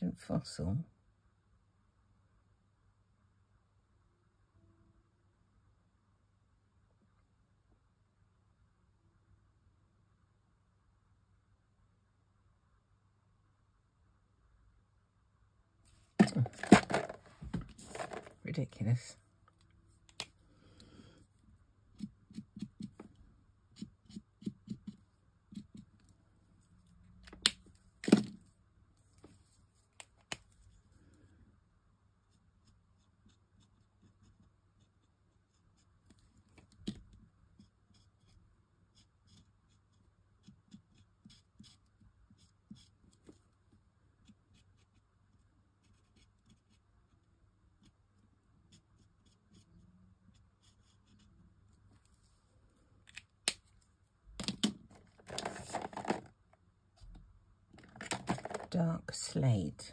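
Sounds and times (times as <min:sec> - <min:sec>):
card rustling: 0:16.0 - 0:18.7, 0:54.4 - 0:56.3, 0:57.8 - 0:58.8
marker nib scratching on card: 0:21.9 - 0:23.0, 0:23.7 - 0:26.0, 0:32.2 - 0:36.3, 0:36.9 - 0:43.4, 0:44.2 - 0:48.0, 0:48.6 - 0:51.4.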